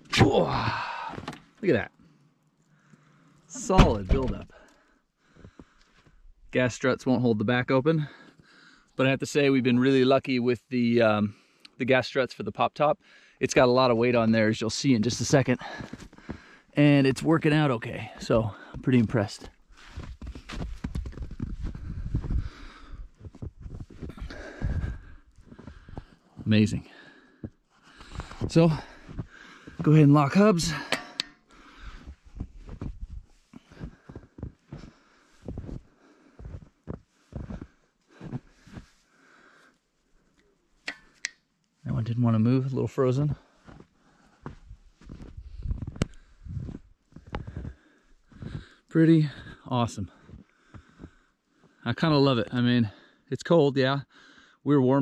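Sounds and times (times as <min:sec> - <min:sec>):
footsteps in snow: 0:18.2 - 0:24.2, 0:31.9 - 0:39.1, 0:43.5 - 0:48.6.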